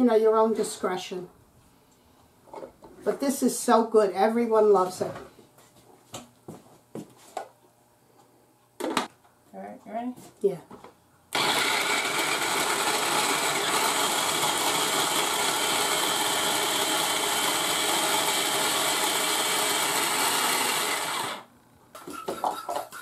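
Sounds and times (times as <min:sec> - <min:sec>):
food processor grinding: 0:11.3 - 0:21.5.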